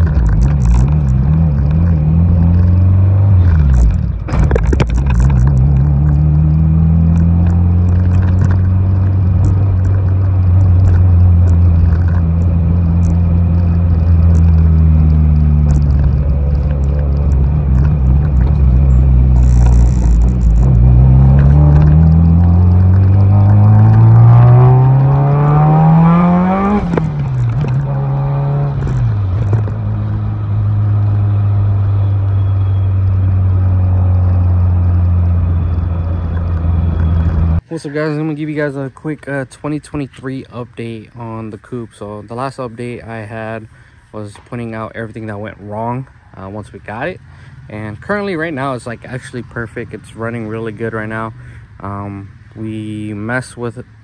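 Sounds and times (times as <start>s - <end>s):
car engine from inside cabin: 0.0s - 37.6s.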